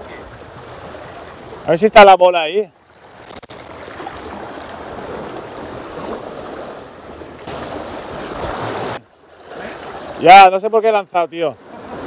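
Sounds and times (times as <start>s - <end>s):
waves lapping against rocks: 0.0s - 12.0s.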